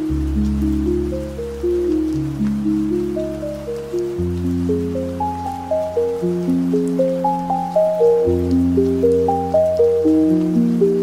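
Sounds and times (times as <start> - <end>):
ambient piano music: 0.0 - 11.0.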